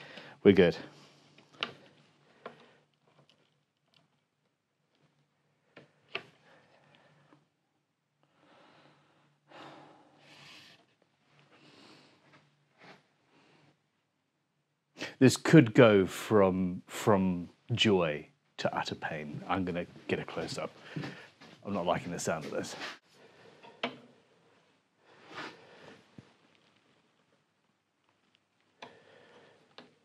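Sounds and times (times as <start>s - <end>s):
soft breaths: 0.0s - 3.3s, 5.4s - 7.6s, 8.2s - 14.0s, 20.6s - 21.7s, 22.5s - 27.4s, 28.7s - 30.0s.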